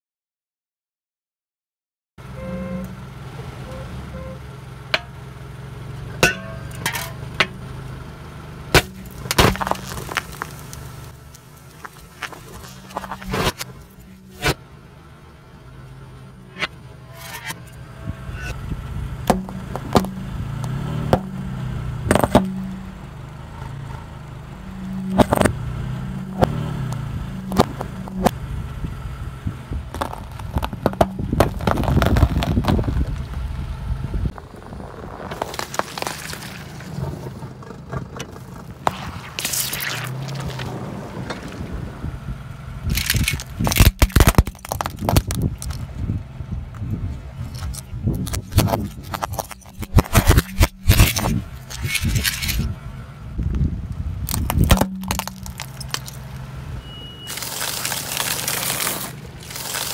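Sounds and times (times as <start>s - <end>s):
car engine humming: 2.2s - 59.9s
tyre crushing cans: 8.8s - 10.8s, 11.6s - 14.6s, 22.1s - 22.7s, 30.0s - 33.1s, 42.9s - 45.8s, 47.6s - 52.7s, 54.3s - 56.3s, 57.3s - 59.9s.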